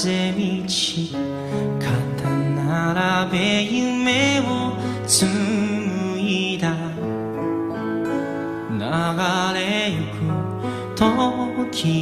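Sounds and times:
pop ballad: 0.0 - 12.0.

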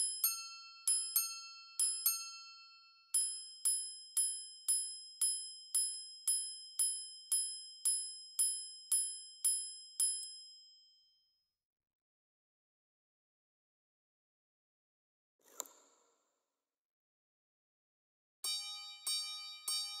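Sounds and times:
watch chiming on steel gongs: 18.5 - 20.0.

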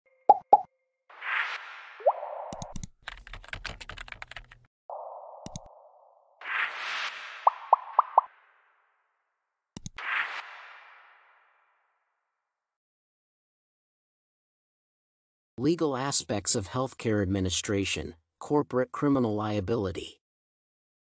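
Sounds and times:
interface pops: 2.0 - 2.9, 4.9 - 6.1, 6.7 - 8.3
mouse click: 2.5 - 2.9, 5.4 - 5.7, 9.8 - 10.0
rapid keyboard typing: 2.5 - 4.7
swishes with rising chirps: 4.9 - 8.6.

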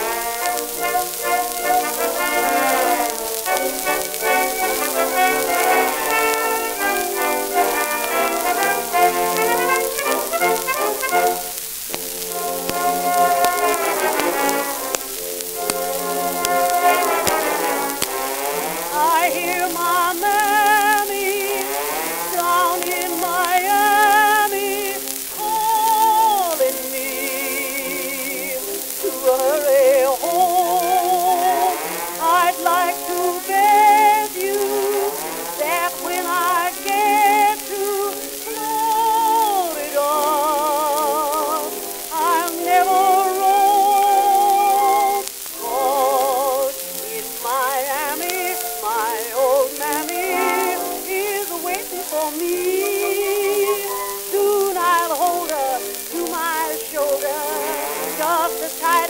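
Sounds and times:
old song with orchestra on record: 0.0 - 59.0
record surface hiss: 0.0 - 59.0.

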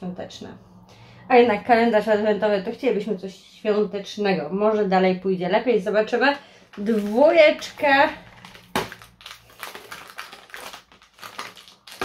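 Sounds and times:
cardboard cracking: 8.2 - 12.0.

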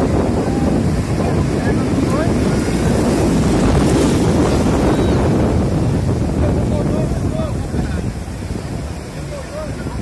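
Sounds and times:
breaking surf: 0.0 - 10.0
wind buffeting the microphone: 0.0 - 10.0.

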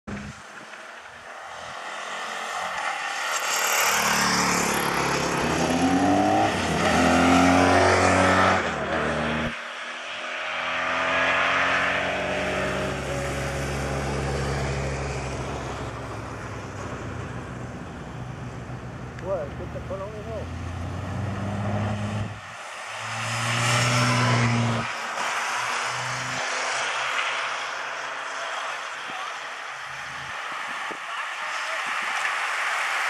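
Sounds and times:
vehicle engines passing by: 0.1 - 33.0.

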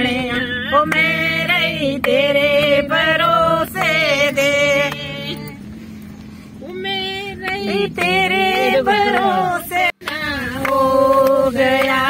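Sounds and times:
woman singing: 0.0 - 5.6, 6.6 - 12.0
car cabin road and engine hum: 0.0 - 12.0.

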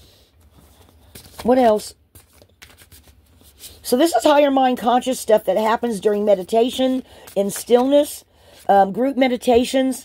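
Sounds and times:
cards being shuffled: 0.4 - 3.8, 6.1 - 8.7.

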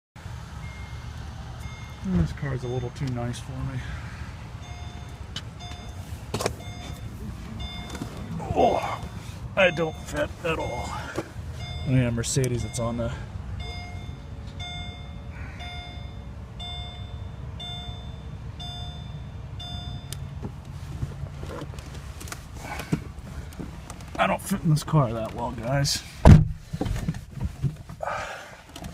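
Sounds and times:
steady low rumble: 0.2 - 27.6
high electronic warning beep: 0.6 - 3.3, 4.6 - 20.3.

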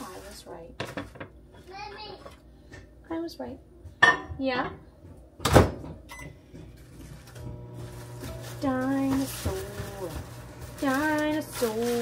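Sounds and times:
microwave oven humming: 5.4 - 12.0.

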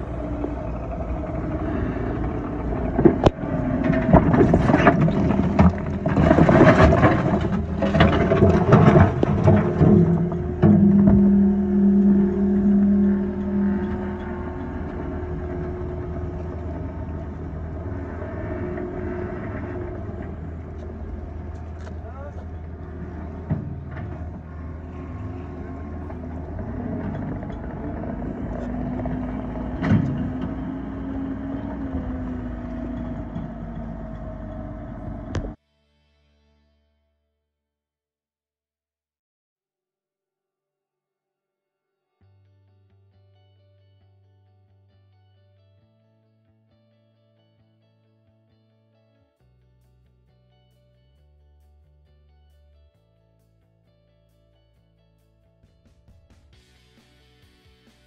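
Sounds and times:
diesel engines running: 0.0 - 35.6
rocks clattering and crashing: 2.8 - 11.7.

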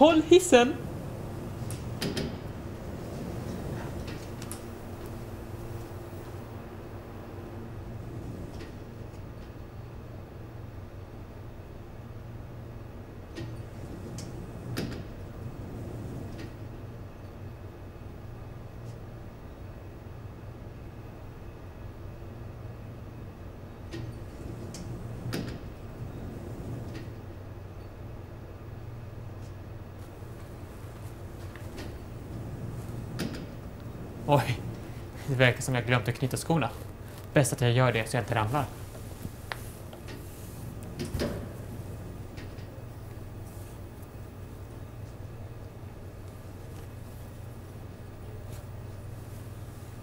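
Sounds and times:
elevator low hum: 0.0 - 50.0
elevator door clicks and knocks: 0.8 - 6.1, 13.3 - 16.7, 23.9 - 27.3, 30.2 - 35.3, 40.0 - 43.4.

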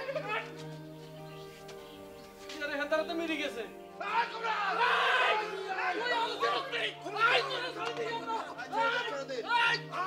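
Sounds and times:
men shouting and talking: 0.0 - 10.0.

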